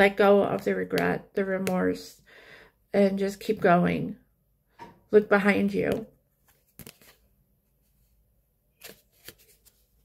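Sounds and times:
cards being handled: 5.9 - 10.0.

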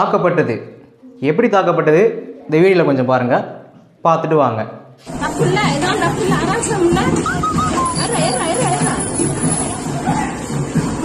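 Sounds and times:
babble of voices: 5.2 - 11.0.

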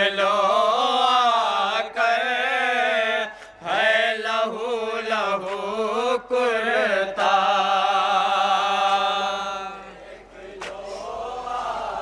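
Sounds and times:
man singing unaccompanied lament: 0.0 - 9.8.

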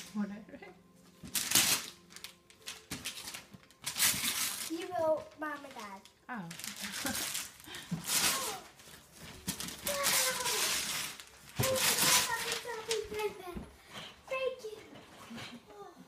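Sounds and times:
wrapping paper tearing: 1.2 - 13.4.

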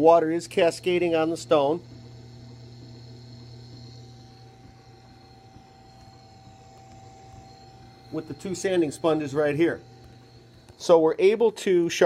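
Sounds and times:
sharpening machine motor hum: 0.0 - 11.0
faint high steady tones: 0.0 - 12.0.

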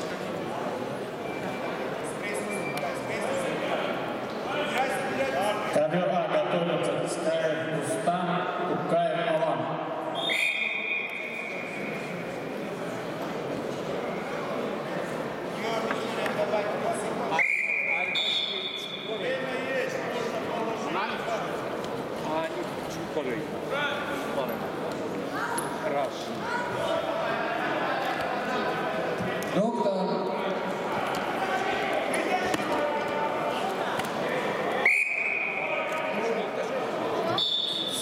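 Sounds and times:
voices echoing in a hall: 0.0 - 38.0
referee's whistle blast: 10.2 - 11.9, 17.4 - 19.1, 34.8 - 35.6.

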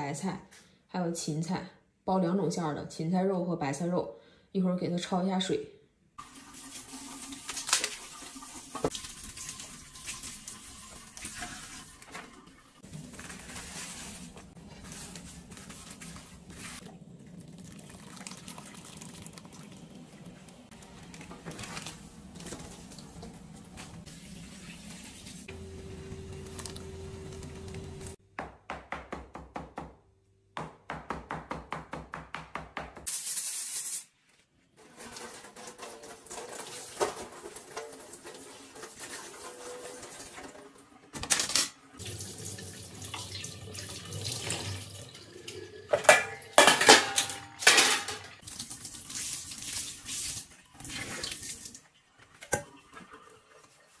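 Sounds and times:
tap water running: 6.2 - 25.6, 34.8 - 41.2, 41.8 - 54.0
steel pot clanking on sink: 45.9 - 48.4.

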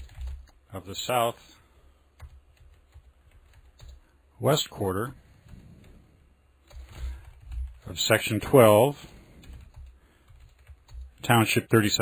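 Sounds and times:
keyboard typing: 0.0 - 0.6, 2.2 - 4.0, 6.6 - 8.0, 9.3 - 11.4.

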